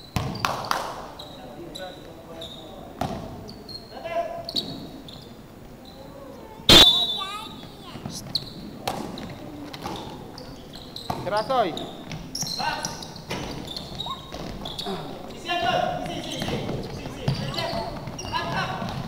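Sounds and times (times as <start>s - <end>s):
players' voices: 1.1s - 19.0s
short high squeaks: 3.5s - 6.1s, 10.4s - 15.0s
loud sharp bang: 6.7s - 7.2s.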